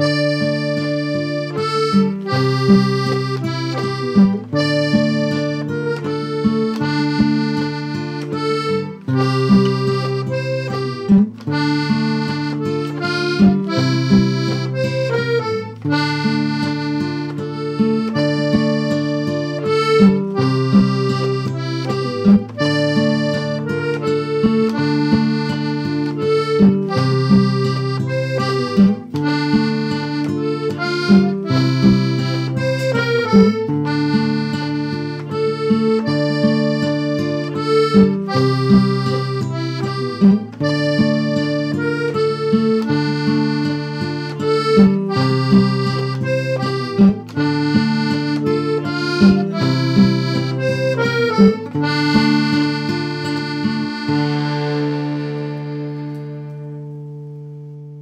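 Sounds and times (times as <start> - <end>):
button accordion waltz: 0.0 - 58.0
classical guitar accompaniment: 0.0 - 58.0.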